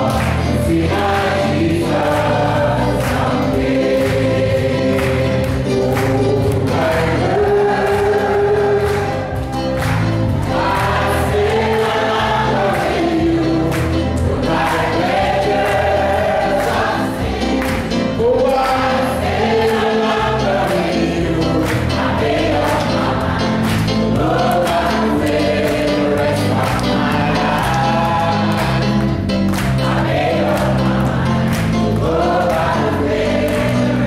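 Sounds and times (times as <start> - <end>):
bass accompaniment: 0.0 - 34.0
congregation singing: 0.0 - 34.0
hand claps: 0.0 - 34.0.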